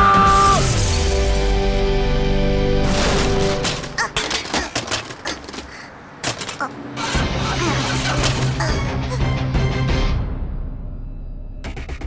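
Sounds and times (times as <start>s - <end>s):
clattering impacts: 2.8s - 7.2s.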